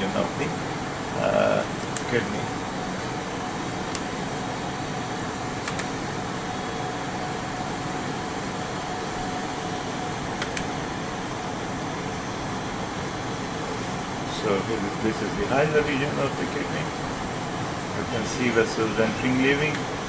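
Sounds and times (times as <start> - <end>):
mechanical fan whirring: 0.0 - 20.0.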